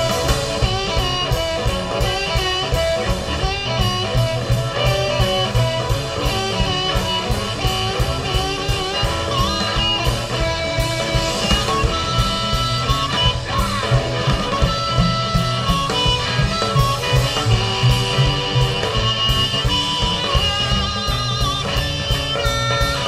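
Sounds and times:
drum kit: 0:00.0 - 0:23.0
electric guitar: 0:00.0 - 0:23.0
harmonica: 0:00.0 - 0:23.0
upright bass: 0:00.0 - 0:23.0.

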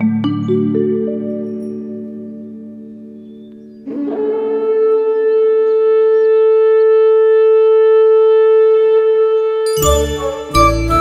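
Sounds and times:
music: 0:00.0 - 0:03.9, 0:09.2 - 0:11.0
hand-held horn note: 0:07.8 - 0:11.0.

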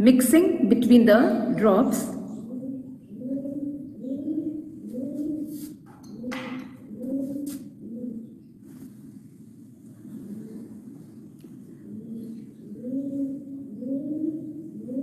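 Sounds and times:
bird cooing: 0:02.2 - 0:15.0.

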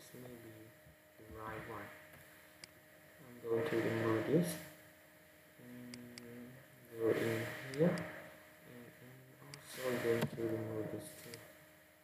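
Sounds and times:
man's quiet indistinct voice: 0:00.0 - 0:01.9, 0:03.2 - 0:04.7, 0:05.6 - 0:11.5.

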